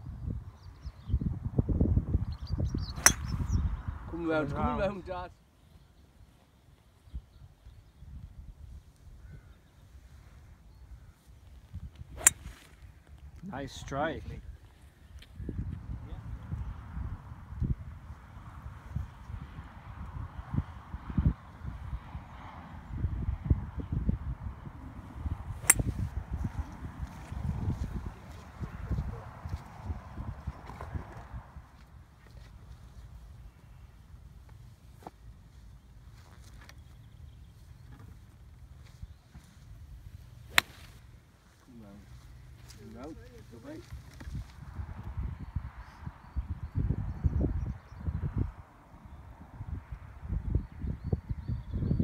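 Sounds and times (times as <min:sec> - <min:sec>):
wind rumbling on microphone: 0:00.0 - 0:04.9, 0:07.0 - 0:13.4, 0:14.3 - 0:34.6, 0:42.1 - 0:52.0
golf clubs striking balls: 0:03.0 - 0:03.3, 0:12.2 - 0:12.4, 0:25.6 - 0:26.0.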